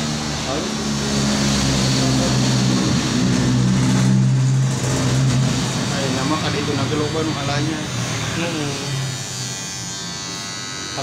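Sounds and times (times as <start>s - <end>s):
electric hair clipper buzzing: 3.0s - 11.0s.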